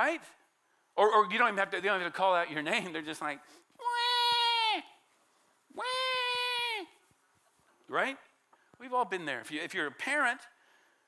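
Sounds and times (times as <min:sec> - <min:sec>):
man imitating child's wail: 0:03.8 - 0:04.9, 0:05.7 - 0:06.9.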